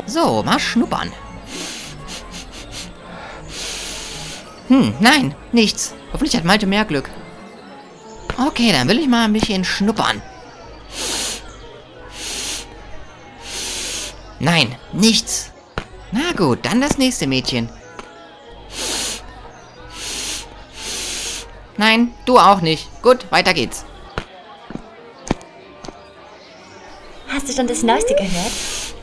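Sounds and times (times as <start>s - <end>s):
person sniffing through nose: 1.5s - 4.6s, 10.9s - 11.5s, 12.1s - 12.7s, 13.4s - 14.2s, 18.7s - 19.3s, 19.9s - 21.5s, 28.4s - 29.0s.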